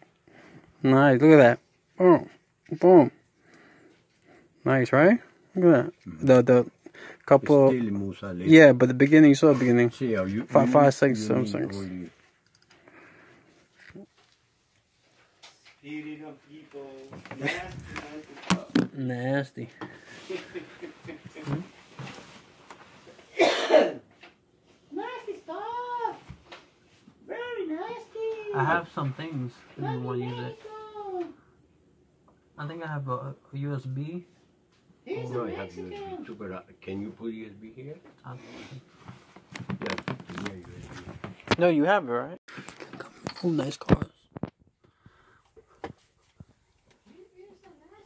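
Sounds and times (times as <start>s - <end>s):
person coughing: 23.3s - 24.0s.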